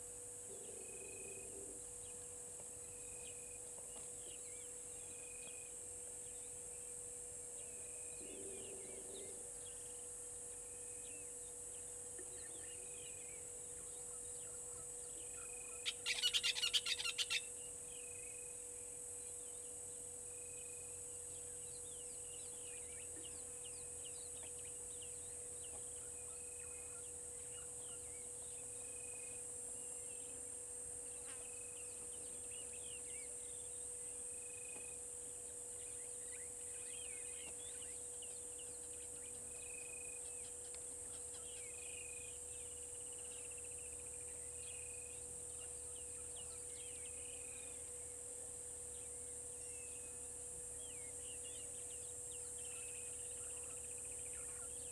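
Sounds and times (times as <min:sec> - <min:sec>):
faint steady hum: 0:00.0 - 0:54.9
high insect drone: 0:00.0 - 0:54.9
bird chirps: 0:14.1 - 0:17.5.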